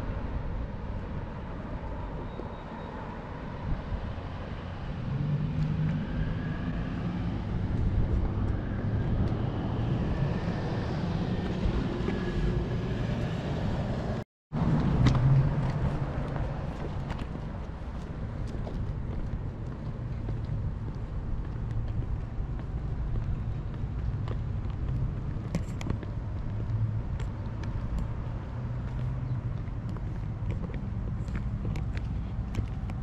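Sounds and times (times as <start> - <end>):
car engines humming: 0.0 - 33.0.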